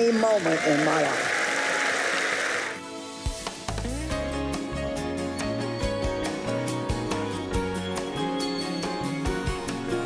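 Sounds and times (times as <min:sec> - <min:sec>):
audience applause: 0:00.0 - 0:02.8
television theme music: 0:00.0 - 0:10.0.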